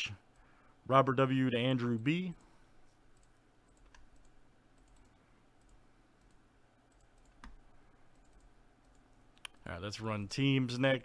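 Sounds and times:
computer mouse clicks: 0:03.1 - 0:09.6.

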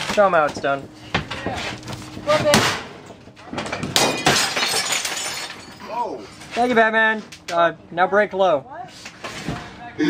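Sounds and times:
debris shattering and crackling: 0:03.6 - 0:06.0.

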